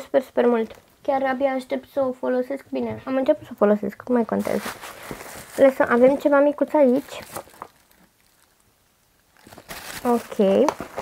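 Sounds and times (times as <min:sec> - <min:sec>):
rustling of packaging: 0:04.1 - 0:11.0.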